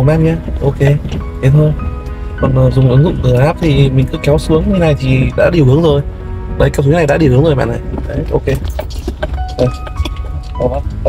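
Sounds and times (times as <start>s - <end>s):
background music: 0.0s - 11.0s
vehicle rumbling: 0.0s - 11.0s.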